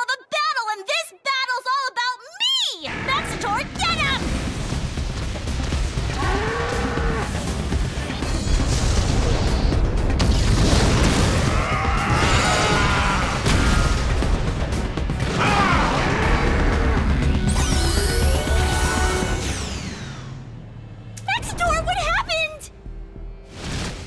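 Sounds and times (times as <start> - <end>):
dramatic background music: 2.8 - 24.0.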